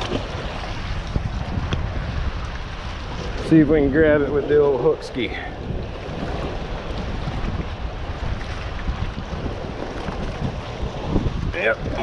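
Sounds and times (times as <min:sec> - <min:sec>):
choppy water: 0:00.0 - 0:12.0
wind buffeting microphone: 0:00.0 - 0:12.0.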